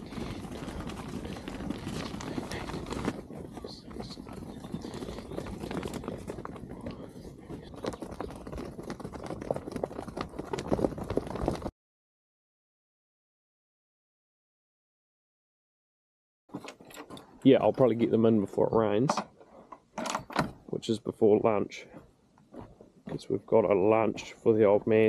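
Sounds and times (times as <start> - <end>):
sheep hooves trotting on dirt: 0.0 - 11.7, 21.4 - 25.0.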